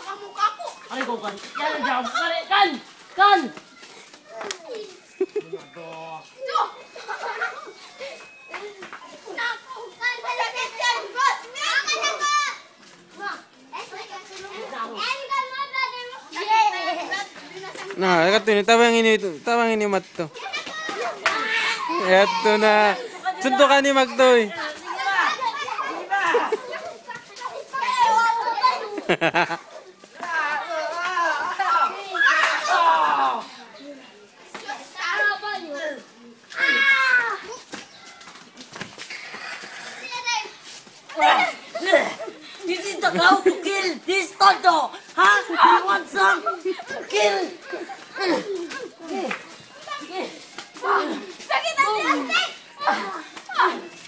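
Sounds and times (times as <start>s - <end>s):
children shouting and yelling: 0.0s - 54.0s.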